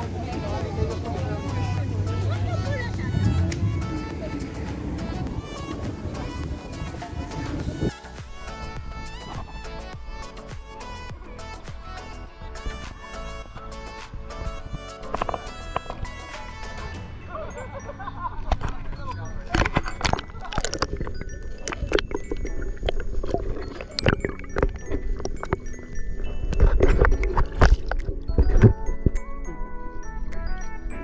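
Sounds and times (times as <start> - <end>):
people's voices: 0.0 - 9.6, 16.0 - 22.5
background music: 0.0 - 31.0.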